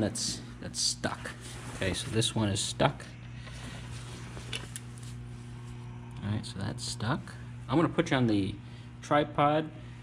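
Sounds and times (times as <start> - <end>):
engine room low hum: 0.0 - 10.0.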